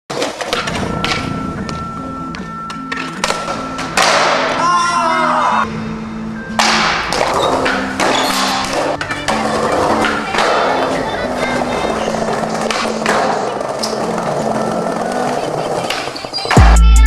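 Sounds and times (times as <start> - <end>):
skateboard clicks and thuds: 0.1 - 4.6, 6.6 - 16.7
skateboard wheels rolling on concrete: 0.1 - 4.6, 6.6 - 17.0
music with steady bassline: 16.6 - 17.0.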